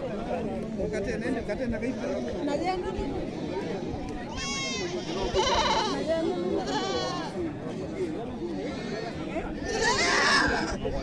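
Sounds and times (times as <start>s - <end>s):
crowd chatter: 0.0s - 11.0s
goats bleating: 4.3s - 6.0s, 6.6s - 7.3s.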